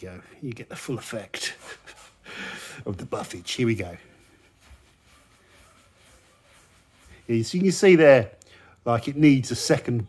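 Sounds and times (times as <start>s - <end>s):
towel rubbing car paint: 0.8s - 8.3s.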